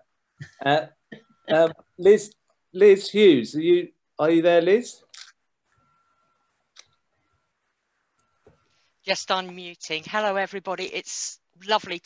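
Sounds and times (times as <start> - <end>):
faint steady tone: 0.0 - 9.5.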